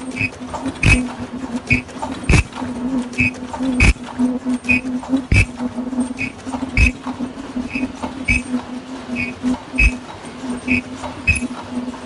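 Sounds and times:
sharp machine knock: 0.0 - 5.6, 6.2 - 7.1, 7.7 - 8.5, 9.2 - 10.0, 10.7 - 11.6
production line machine hum: 0.0 - 12.0.

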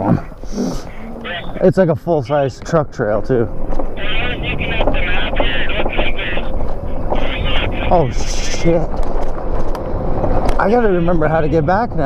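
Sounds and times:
low rumble of wind and tyres: 0.0 - 12.0.

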